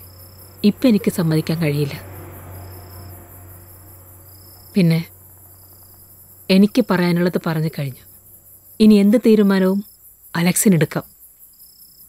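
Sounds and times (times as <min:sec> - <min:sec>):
crickets chirring: 0:00.0 - 0:12.0
people speaking: 0:00.6 - 0:02.0, 0:04.8 - 0:05.1, 0:06.5 - 0:08.0, 0:08.8 - 0:09.8, 0:10.4 - 0:11.1.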